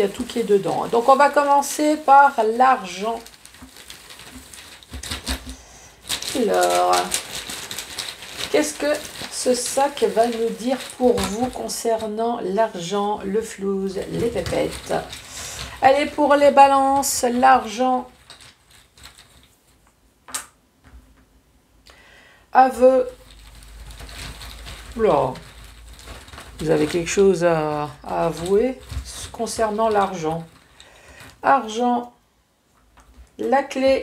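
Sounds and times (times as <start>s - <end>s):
tokens rustling in cloth bag: 0.0s - 19.6s, 22.8s - 32.0s.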